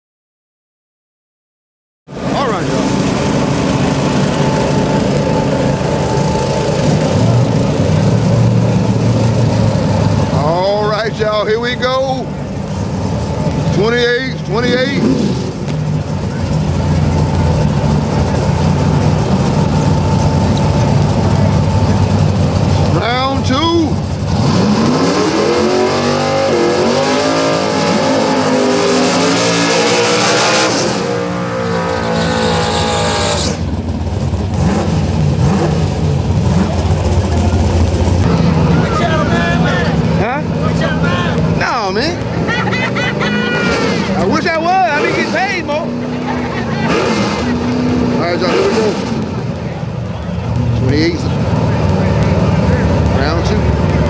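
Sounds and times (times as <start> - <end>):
engines idling loudly: 2.1 - 54.0
engine revving in rising sweeps: 24.2 - 33.9.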